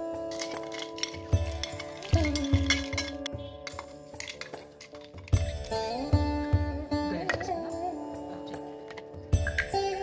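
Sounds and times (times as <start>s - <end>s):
instrumental background music: 0.0s - 10.0s
steel plate clinking on metal jar: 0.3s - 5.9s.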